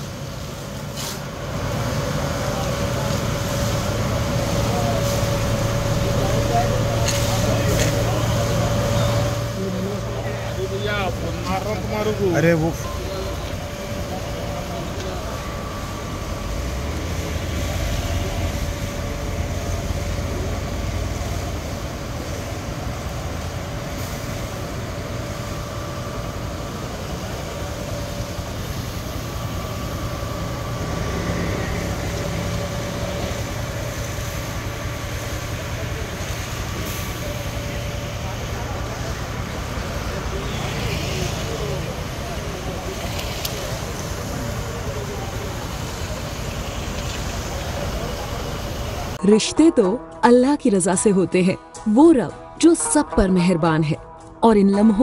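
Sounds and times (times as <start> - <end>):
fire engine pump humming: 0.0 - 55.0
faint held tone: 12.7 - 16.6.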